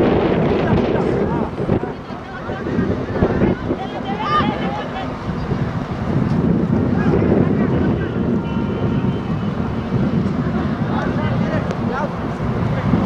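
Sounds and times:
crowd chatter: 0.0s - 13.0s
wind buffeting microphone: 0.0s - 13.0s.

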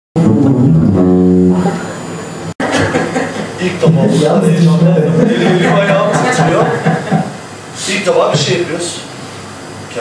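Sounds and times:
acoustic guitars playing: 0.2s - 2.9s
voices: 3.0s - 9.1s.

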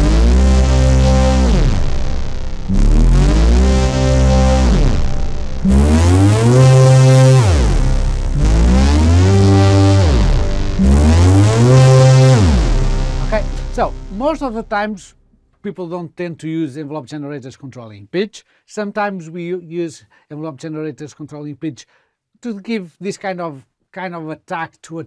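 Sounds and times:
synth notes sliding down in pitch: 0.0s - 15.1s.

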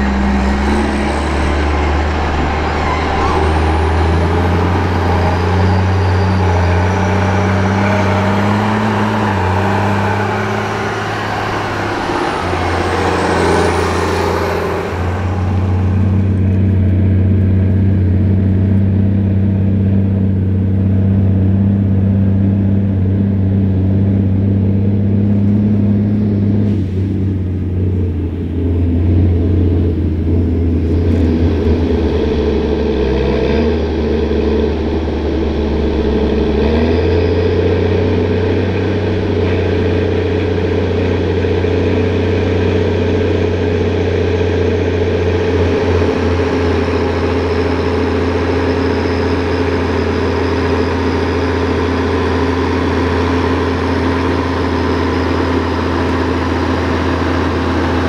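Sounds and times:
high thin whine: 0.0s - 17.1s
tractor diesel engines running: 0.0s - 58.0s.

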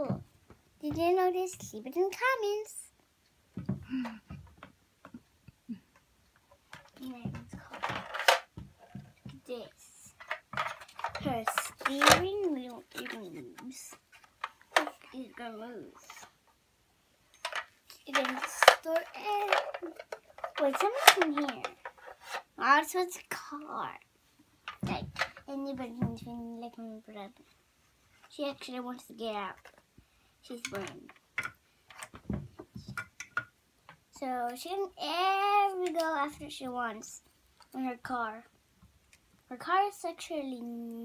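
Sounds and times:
child speaking: 0.0s - 0.2s, 0.8s - 3.0s, 7.0s - 8.1s, 9.3s - 10.2s, 11.0s - 14.0s, 14.8s - 16.4s, 17.9s - 21.8s, 22.6s - 24.1s, 24.8s - 27.4s, 28.3s - 29.7s, 30.4s - 31.2s, 34.2s - 38.5s, 39.5s - 41.0s
plastic toy clicks: 10.2s - 12.2s, 17.4s - 22.0s.

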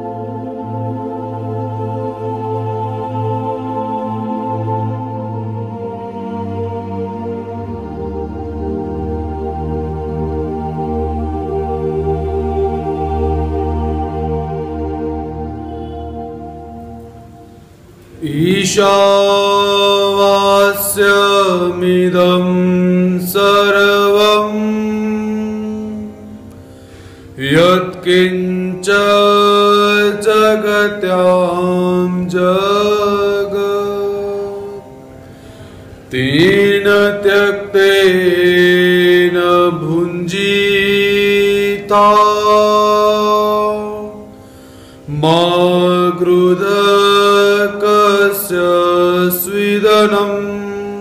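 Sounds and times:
man chanting: 18.2s - 26.4s, 27.4s - 34.9s, 36.1s - 44.3s, 45.1s - 51.0s.

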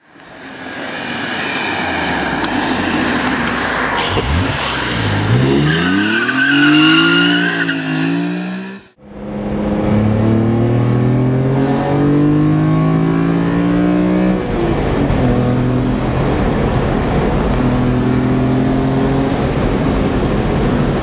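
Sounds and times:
car engine accelerating hard: 3.2s - 21.0s
high squeal: 4.0s - 9.0s.

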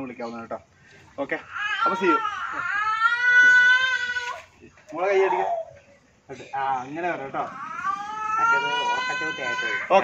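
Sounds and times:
adults talking: 4.4s - 10.0s.

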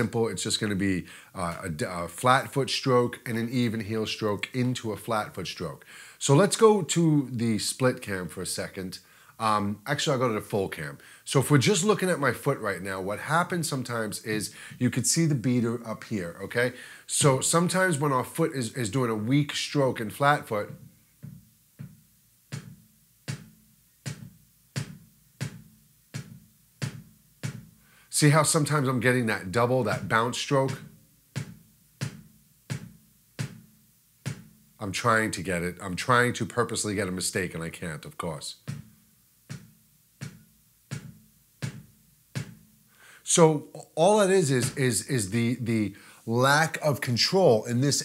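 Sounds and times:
kick drum pedal strokes: 20.7s - 27.8s, 29.8s - 34.8s, 38.6s - 42.8s.

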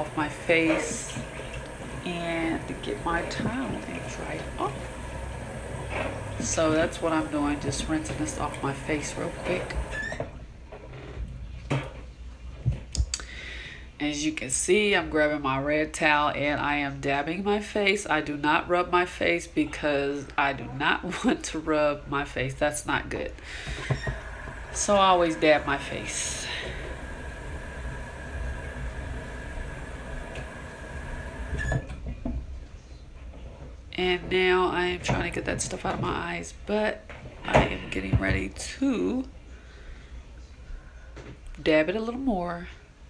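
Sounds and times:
water splashing at a sink: 0.0s - 10.2s.

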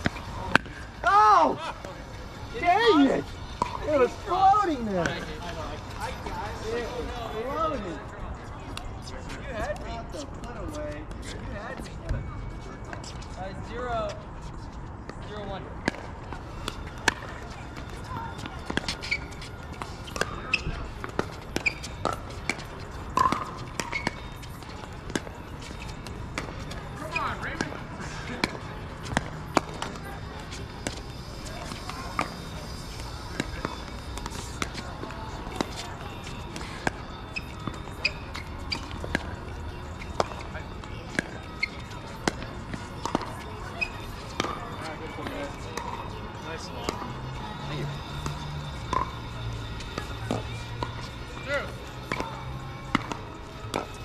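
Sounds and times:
ball bouncing on court: 3.6s - 3.8s, 17.8s - 25.3s, 27.5s - 30.0s, 41.1s - 44.6s, 48.2s - 49.3s, 52.0s - 54.0s.

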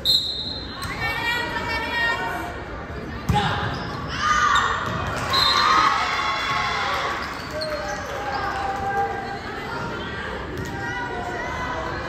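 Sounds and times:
crowd shouting and cheering: 3.3s - 12.0s.

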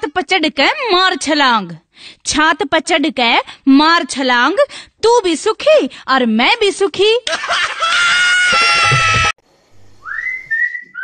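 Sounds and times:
person whistling: 10.0s - 11.0s.

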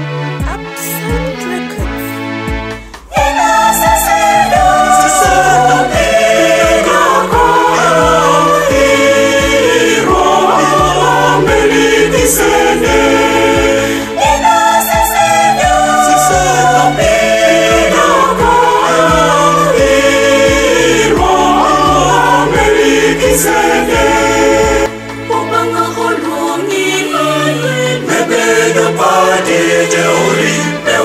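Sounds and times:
bass line and beat: 0.4s - 9.5s
choir singing a hymn: 3.1s - 31.0s.

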